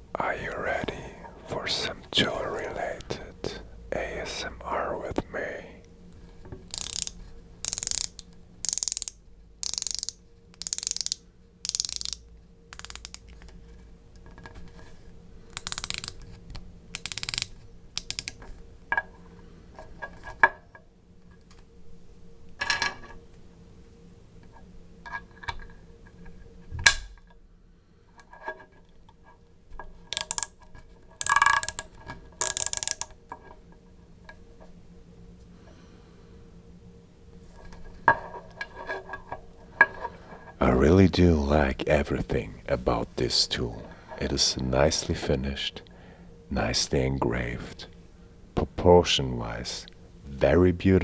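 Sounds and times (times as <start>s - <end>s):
ratchet pawl clicking: 6.7s - 13.2s, 15.6s - 16.2s, 17.0s - 18.4s, 30.2s - 30.5s, 31.2s - 33.1s.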